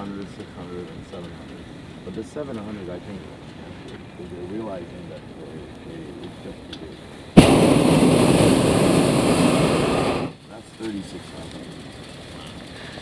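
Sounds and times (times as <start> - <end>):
propane burner blast: 0.0 - 13.0.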